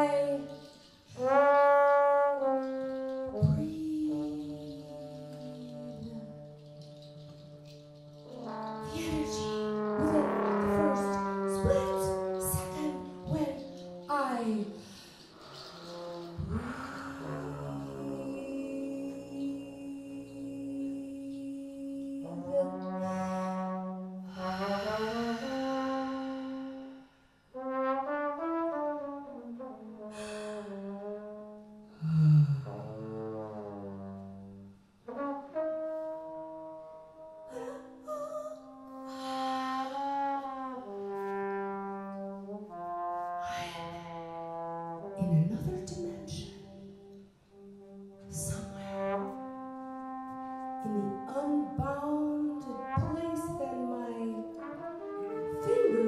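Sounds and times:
brass section playing held chords: 0:00.0 - 0:18.7, 0:22.3 - 0:26.7
big band low held notes: 0:00.0 - 0:21.0, 0:27.6 - 0:56.0.

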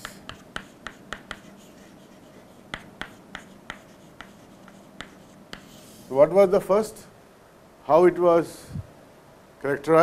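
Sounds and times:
chalk tapping on chalkboard: 0:00.0 - 0:06.1
chalk scratching: 0:00.0 - 0:06.3.

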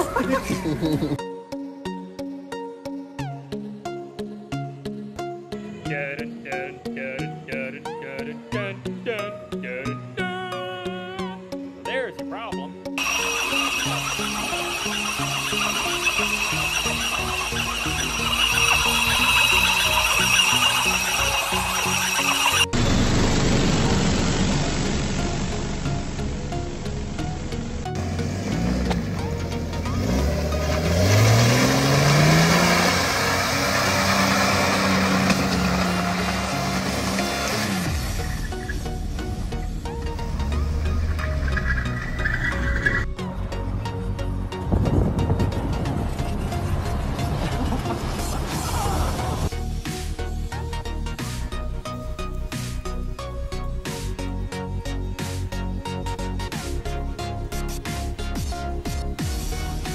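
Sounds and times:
background music: 0:00.0 - 0:59.9
vehicle engine revving: 0:13.0 - 0:53.0.

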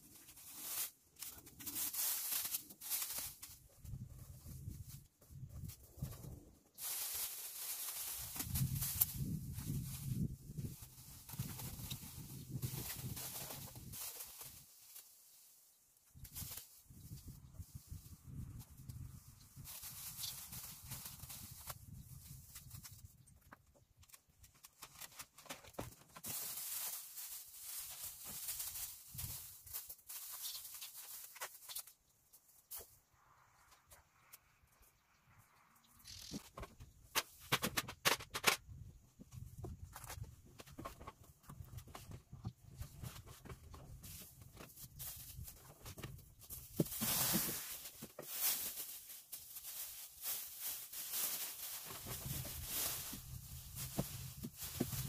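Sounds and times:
plastic film rustling and crinkling: 0:00.0 - 0:33.0, 0:39.5 - 0:55.0.

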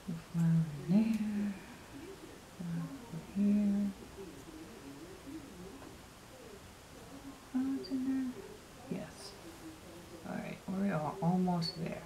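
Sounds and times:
woman humming quietly: 0:00.0 - 0:04.6, 0:07.0 - 0:09.5.

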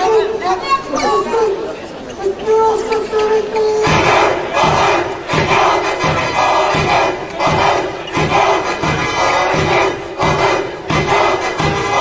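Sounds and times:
crowd shouting in a gymnasium: 0:00.0 - 0:12.0.

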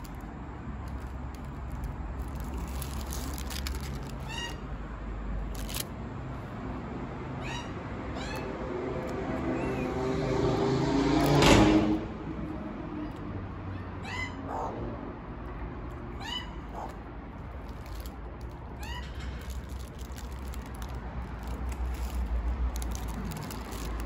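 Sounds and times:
magpies calling: 0:04.0 - 0:04.7, 0:07.4 - 0:08.7, 0:09.4 - 0:10.1, 0:13.7 - 0:14.8, 0:16.1 - 0:17.1.

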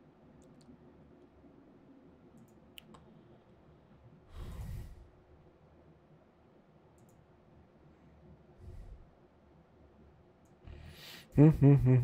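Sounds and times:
faint computer clicks: 0:06.9 - 0:07.2.

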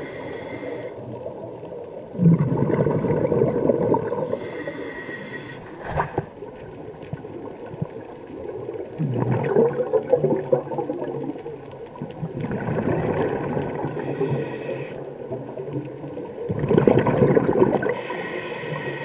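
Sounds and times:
hissing regulator inhale: 0:00.0 - 0:01.0, 0:04.2 - 0:05.9, 0:13.9 - 0:15.1, 0:17.9 - 0:19.0
exhaled bubbles burbling: 0:01.1 - 0:04.6, 0:05.7 - 0:18.1.

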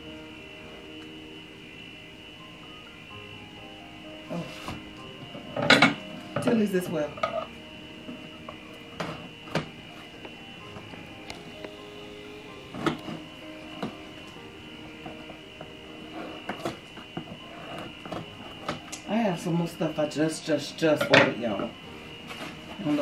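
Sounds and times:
quiet background music: 0:00.0 - 0:23.0.

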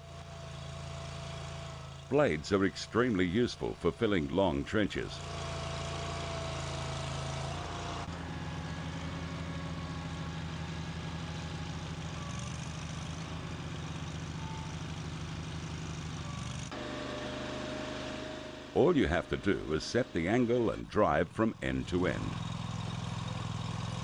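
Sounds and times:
blade pushing soil: 0:00.0 - 0:20.8
mini loader engine under load: 0:00.0 - 0:24.0.

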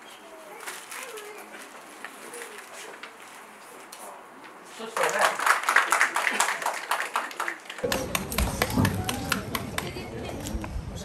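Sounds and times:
group clapping: 0:04.8 - 0:10.6.

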